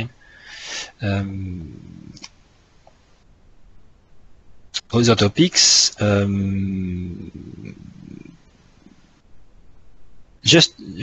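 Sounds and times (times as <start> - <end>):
low microphone rumble: 1.0 - 2.2, 6.0 - 11.0.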